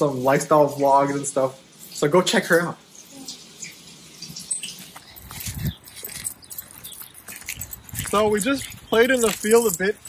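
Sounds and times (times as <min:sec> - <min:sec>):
collar tags jingling: 0:04.7 - 0:10.0
footsteps: 0:04.7 - 0:10.0
paws on gravel and grass: 0:04.7 - 0:10.0.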